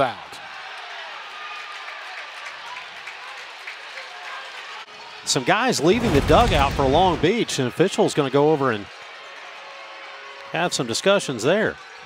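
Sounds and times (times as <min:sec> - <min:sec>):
crowd clapping: 0:00.0 - 0:12.0.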